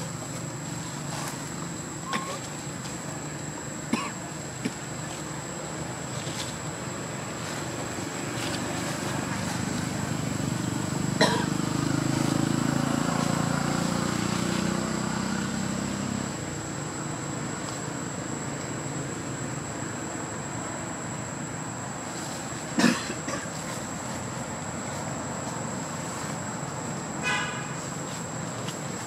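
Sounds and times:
passing vehicle rumble: 0:06.8 - 0:17.6.

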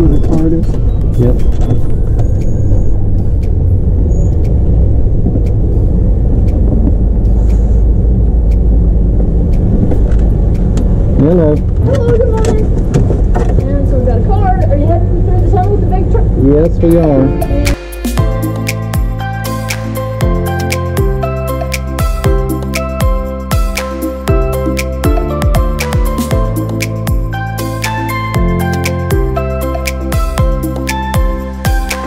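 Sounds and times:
vehicle engine low rumble: 0:00.0 - 0:31.8.

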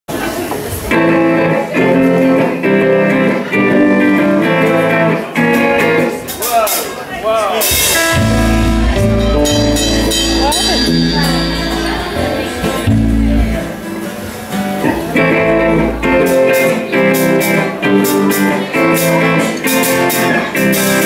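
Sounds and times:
live rock band playing: 0:00.3 - 0:21.0
cymbal crash: 0:07.8 - 0:14.6
electric guitar chords: 0:07.8 - 0:21.0.

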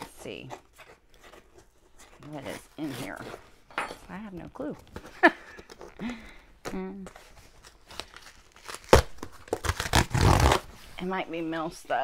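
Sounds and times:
packaging tearing and crinkling: 0:07.4 - 0:10.7.

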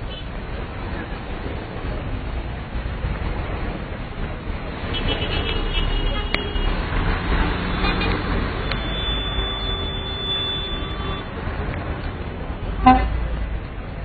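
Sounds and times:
low traffic rumble: 0:00.0 - 0:14.0
car horn: 0:04.9 - 0:06.8, 0:07.5 - 0:11.3, 0:12.8 - 0:13.2.

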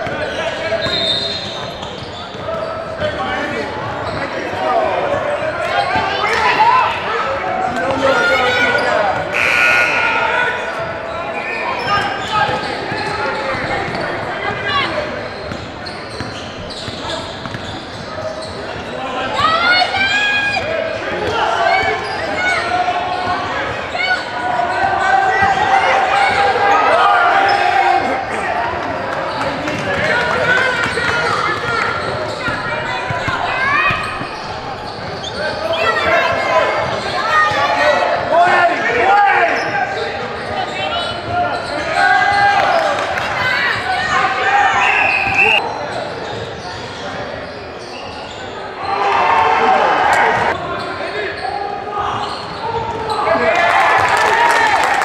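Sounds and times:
voices calling out: 0:00.4 - 0:53.5.

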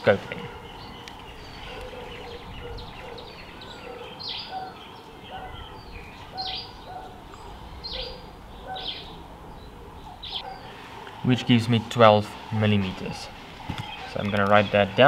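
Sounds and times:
birds chirping: 0:00.0 - 0:15.0
faint background noise: 0:00.0 - 0:15.0
lower bird calls: 0:00.3 - 0:15.0.

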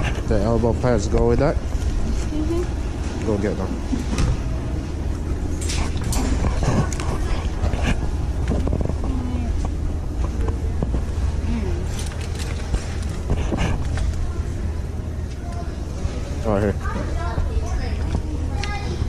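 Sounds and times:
faint indistinct voices: 0:08.9 - 0:19.0.

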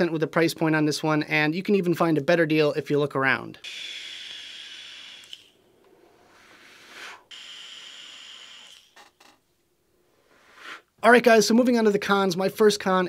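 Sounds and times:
vape airy hiss with whistle: 0:03.7 - 0:05.5, 0:06.3 - 0:09.0, 0:10.3 - 0:10.9.

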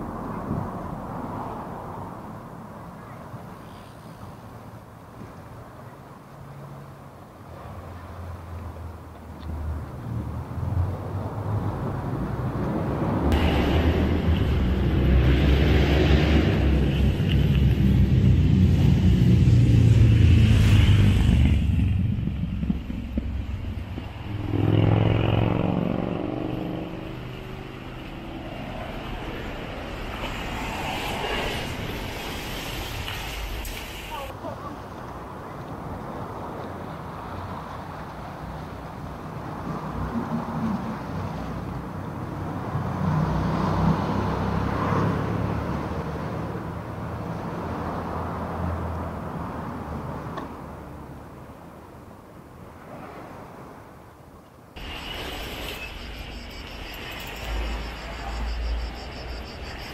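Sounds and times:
vehicle passing: 0:07.9 - 0:34.3, 0:42.4 - 0:51.1
engine passing with sliding pitch: 0:10.7 - 0:33.6, 0:54.8 - 0:59.9.

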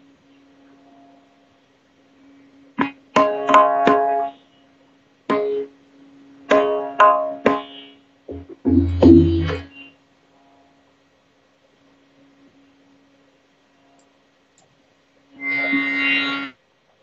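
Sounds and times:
tabla playing: 0:03.2 - 0:04.2, 0:08.3 - 0:09.7
deep bass drum stroke: 0:08.3 - 0:09.7
drone note: 0:08.3 - 0:09.9.

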